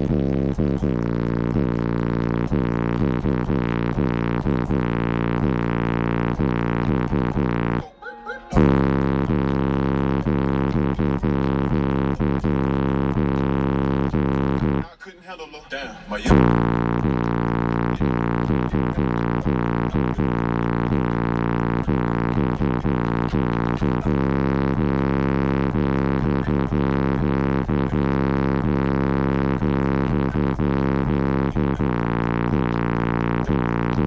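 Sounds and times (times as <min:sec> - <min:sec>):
loud bass-heavy music: 0:00.0 - 0:15.0, 0:15.8 - 0:34.0.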